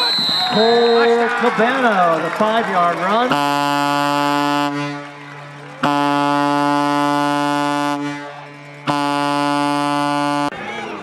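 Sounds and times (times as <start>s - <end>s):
air horn blasts: 3.3s - 5.2s, 5.8s - 10.6s.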